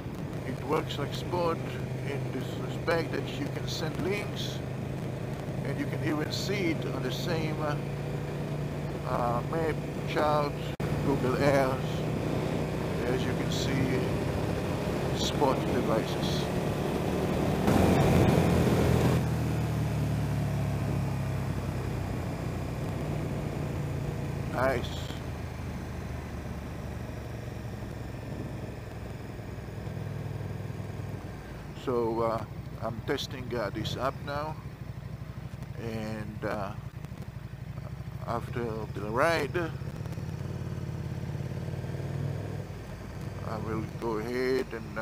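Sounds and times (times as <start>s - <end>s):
motorcycle engine running: 0.0s - 45.0s.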